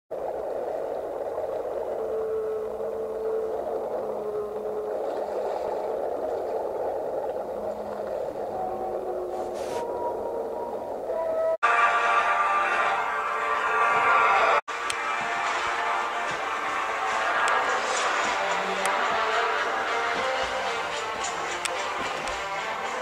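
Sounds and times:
rushing underwater noise: 0.1 - 23.0
whale calls: 0.2 - 23.0.

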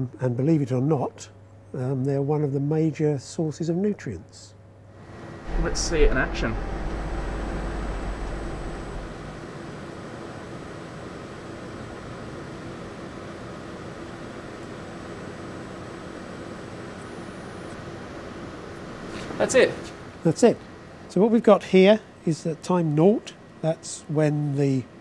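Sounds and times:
equipment and ventilation hum: 0.0 - 25.0
deep rumble: 5.4 - 10.0.

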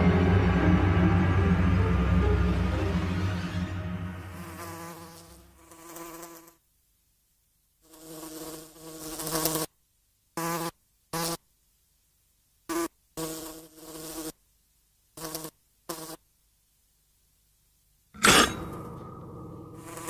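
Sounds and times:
fly buzzing: 4.0 - 6.6, 7.8 - 9.7, 10.4 - 11.4, 12.7 - 14.4, 15.2 - 16.2, 18.2 - 20.0.

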